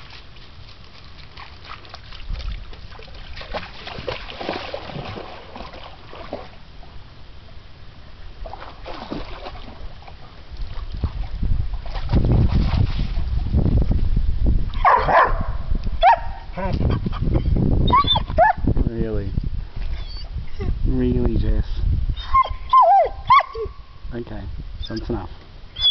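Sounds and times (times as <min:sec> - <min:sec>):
dog splashing in water: 0:00.0 - 0:06.6, 0:08.4 - 0:13.3
dog barking: 0:14.8 - 0:16.4
dog yelping and whining: 0:17.9 - 0:18.6, 0:20.0 - 0:20.6, 0:22.2 - 0:23.8.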